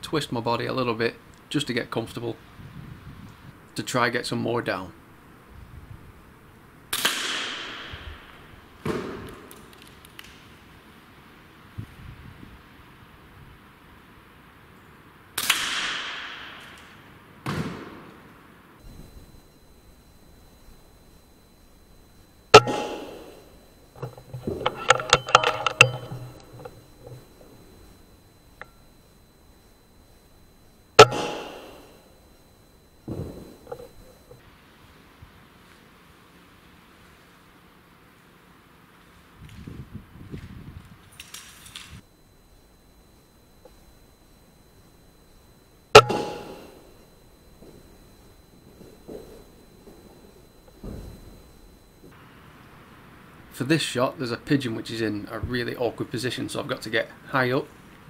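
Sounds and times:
air rifle shots: 6.9 - 8.2, 15.4 - 16.6, 31.0 - 31.8.

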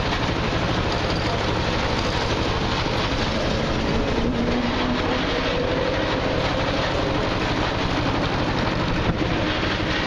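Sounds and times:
cart rattling: 0.0 - 10.0
road noise: 0.0 - 10.0
small engine running: 0.0 - 10.0.

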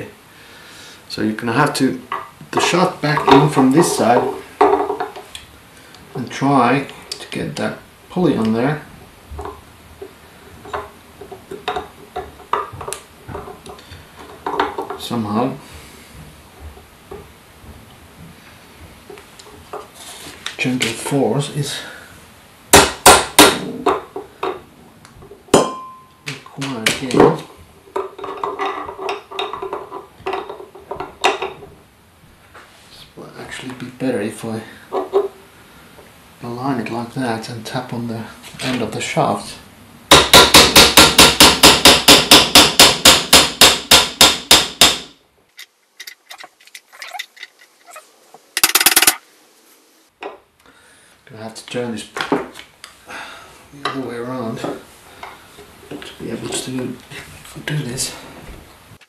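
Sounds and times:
ringing metallic clink: 25.6 - 26.2.

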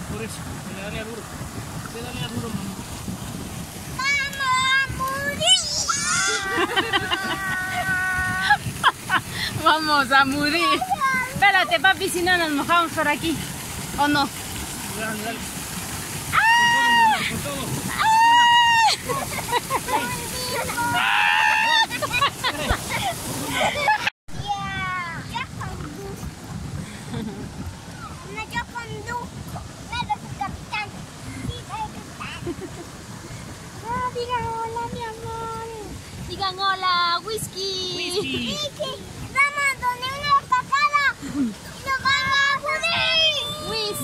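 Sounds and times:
fountain spray splashing on water: 0.0 - 44.0
excited yelling: 4.4 - 8.6, 16.3 - 19.2, 19.9 - 24.0.

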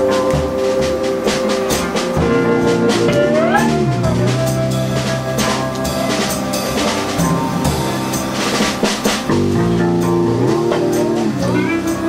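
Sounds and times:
drum kit beat: 0.0 - 12.0
electric bass line: 0.0 - 12.0.

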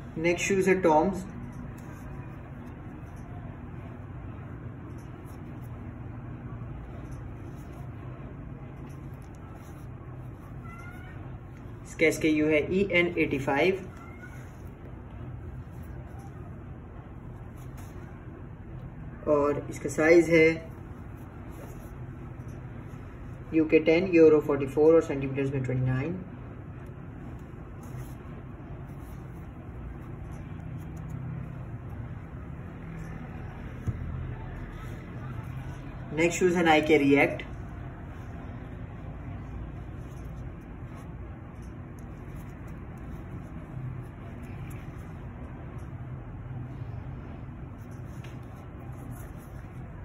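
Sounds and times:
low background hum: 0.0 - 50.0
low background rumble: 0.0 - 50.0.

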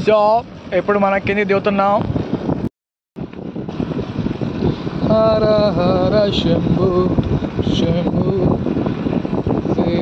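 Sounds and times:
motorcycle running: 0.0 - 10.0
wind buffeting microphone: 0.0 - 10.0.

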